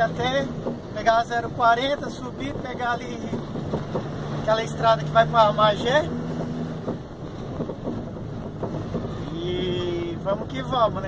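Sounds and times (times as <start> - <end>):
road noise: 0.0 - 11.0
truck engine running: 0.0 - 11.0.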